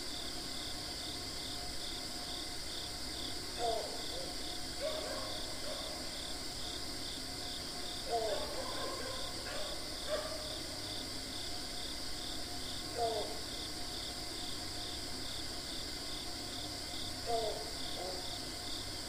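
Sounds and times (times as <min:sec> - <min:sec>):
insect chorus drone: 0:00.0 - 0:19.0.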